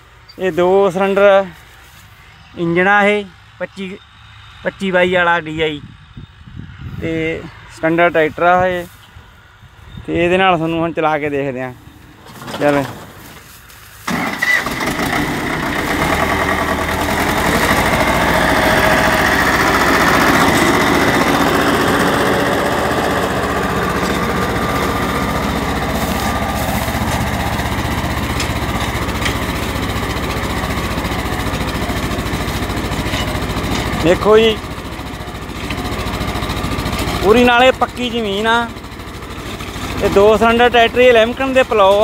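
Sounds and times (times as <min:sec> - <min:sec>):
tractor diesel engine: 0:00.0 - 0:42.0.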